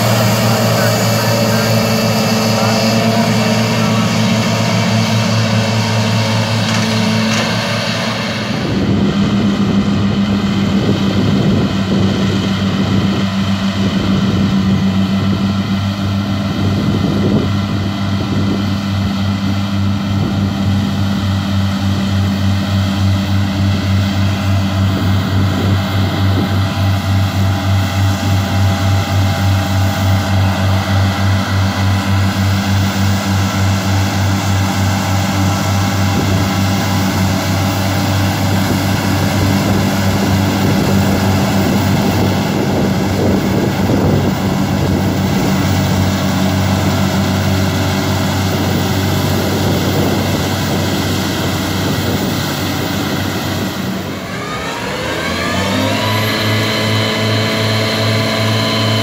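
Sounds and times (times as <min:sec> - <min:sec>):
tractor engine droning: 0:00.0 - 0:59.0.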